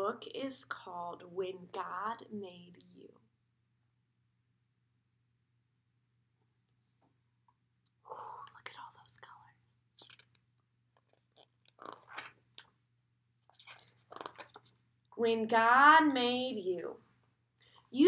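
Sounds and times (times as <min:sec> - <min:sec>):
book pages rustling: 0:09.9 - 0:12.7, 0:13.4 - 0:14.8.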